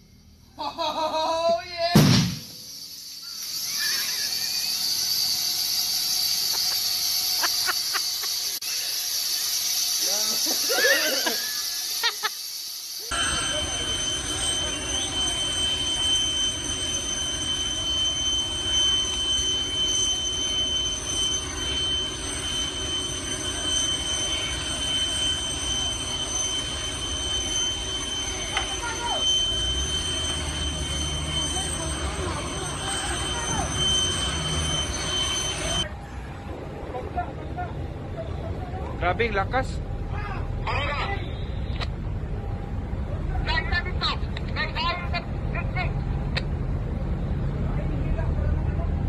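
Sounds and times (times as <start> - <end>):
high-pitched jet whine: 2.2 - 46.3
broad rush of noise: 13.1 - 41.2.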